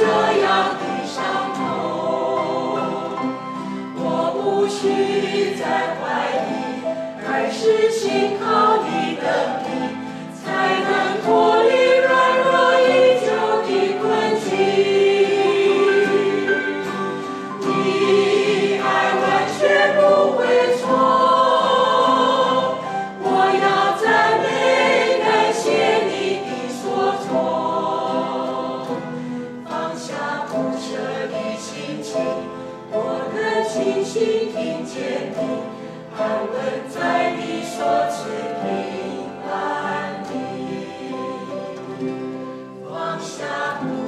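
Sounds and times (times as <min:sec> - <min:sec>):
acoustic guitars: 0:00.0 - 0:44.0
group singing worship song: 0:00.0 - 0:44.0.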